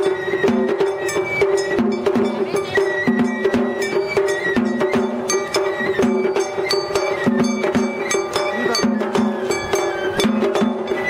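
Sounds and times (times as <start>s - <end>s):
drums: 0.0s - 11.0s
high flute: 0.0s - 11.0s.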